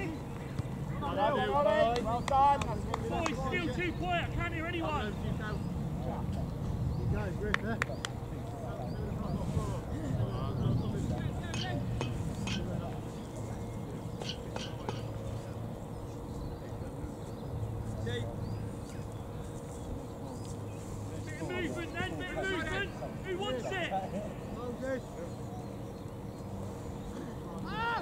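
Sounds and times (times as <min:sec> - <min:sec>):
faint distant voices: 0:00.0 - 0:28.0
low outdoor rumble: 0:00.0 - 0:28.0.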